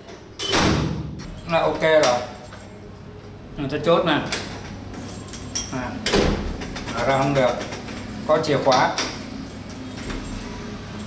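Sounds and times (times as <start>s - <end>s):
keys jingling on a ring: 1.2s - 2.9s, 4.9s - 11.0s.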